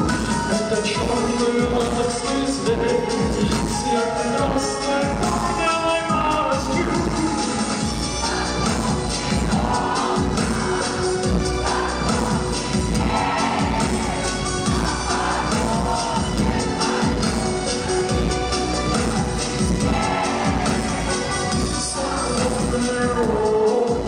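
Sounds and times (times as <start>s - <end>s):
live band music with steady beat: 0.0s - 24.0s
crowd cheering: 8.2s - 22.3s.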